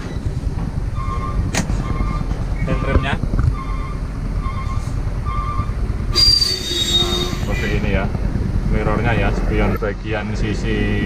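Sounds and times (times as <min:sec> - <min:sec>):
truck cab low rumble: 0:00.0 - 0:11.0
loud hiss with high squeal: 0:06.1 - 0:07.9.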